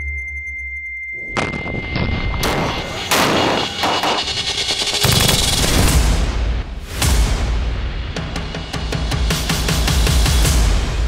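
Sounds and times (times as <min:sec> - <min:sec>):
rapid gunfire: 0:02.5 - 0:06.3.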